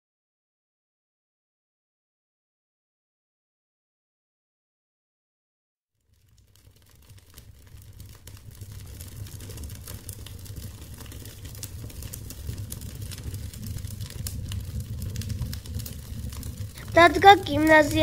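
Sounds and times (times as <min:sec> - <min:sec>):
wood fire crackling: 0:06.0 - 0:18.0.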